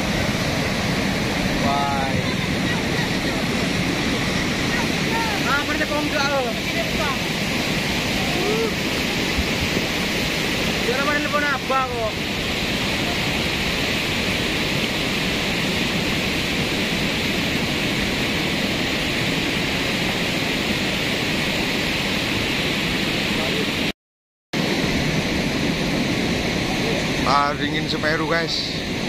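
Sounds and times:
mudflow rushing down river: 0.0 - 23.9, 24.6 - 29.0.

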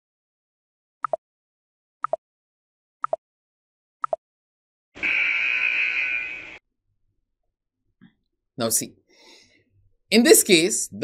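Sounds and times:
time-up buzzer: 5.0 - 6.6.

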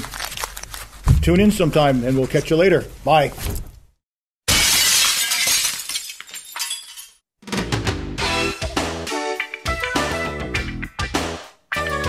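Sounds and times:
loud crash of shattering glass: 4.5 - 7.2
music with plucked notes: 8.2 - 12.0.

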